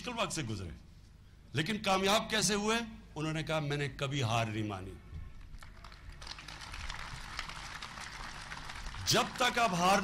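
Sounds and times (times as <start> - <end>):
audience applauding: 5.6 - 10.0.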